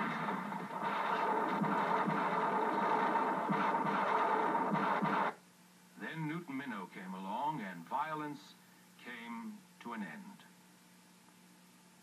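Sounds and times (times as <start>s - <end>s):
sharp hits: 0.0s - 5.4s
western action soundtrack on television: 0.0s - 5.4s.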